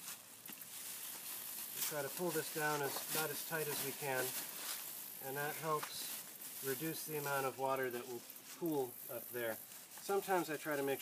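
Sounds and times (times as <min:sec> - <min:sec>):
bag rustling: 0:00.0 - 0:08.9.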